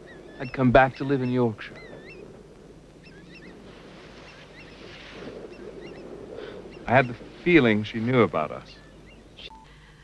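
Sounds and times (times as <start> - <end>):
faint bird calls: 0.0 - 10.0
low wind hum: 0.0 - 10.0.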